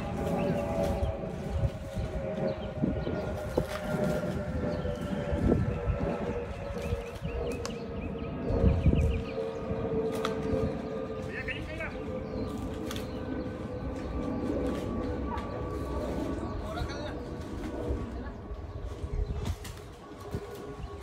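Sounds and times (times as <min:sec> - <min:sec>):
small engine droning: 0:00.0 - 0:21.0
wind buffeting microphone: 0:00.0 - 0:21.0.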